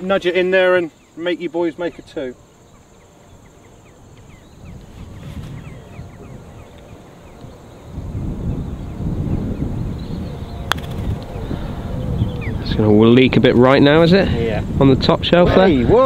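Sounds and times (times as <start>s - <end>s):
small birds chirping: 0.0s - 14.9s
wind buffeting microphone: 0.0s - 16.0s.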